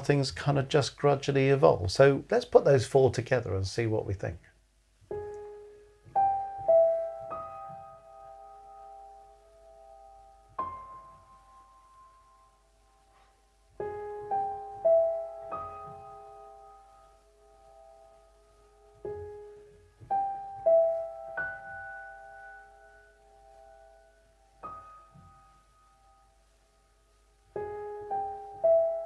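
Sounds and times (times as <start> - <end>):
soft piano notes ringing: 5.0 - 29.0.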